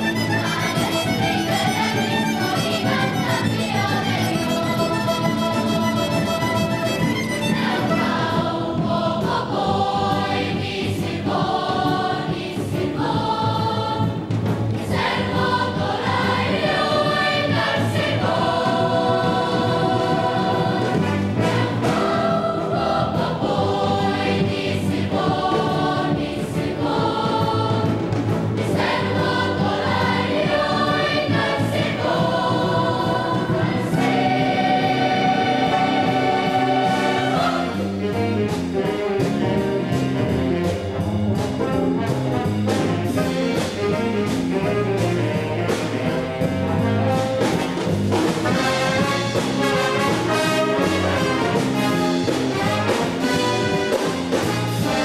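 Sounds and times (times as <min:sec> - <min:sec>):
children's choir singing: 0:00.0 - 0:38.3
instrumental backing: 0:00.0 - 0:55.0.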